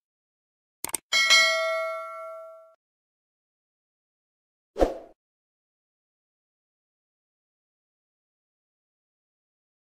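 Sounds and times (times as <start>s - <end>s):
bright bell ding: 1.2s - 2.8s.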